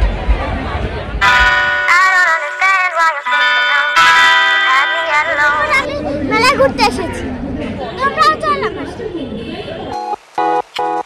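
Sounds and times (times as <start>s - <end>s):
background chatter: 0.0s - 10.0s
girl talking: 4.8s - 9.5s.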